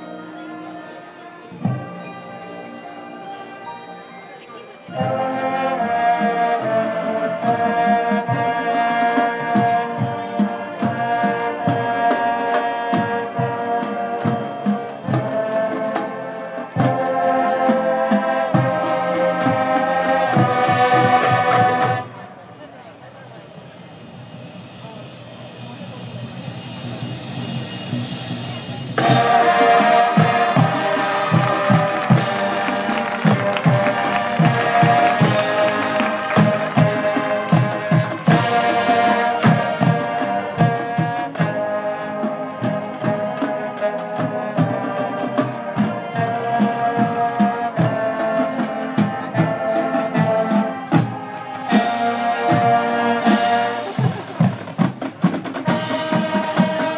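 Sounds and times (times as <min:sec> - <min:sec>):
brass holding sustained chords: 0:00.0 - 0:22.2, 0:29.0 - 0:54.0
stadium crowd murmur: 0:00.0 - 0:56.9.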